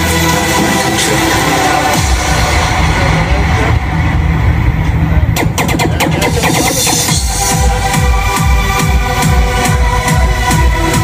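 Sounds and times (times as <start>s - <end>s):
heavy bass line: 0.0s - 11.0s
live electronic music: 0.0s - 11.0s
sharp percussive hits: 5.3s - 7.8s.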